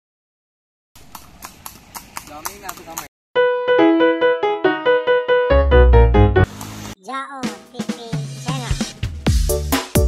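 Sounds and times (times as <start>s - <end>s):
horse hooves clip-clopping: 1.0s - 3.1s.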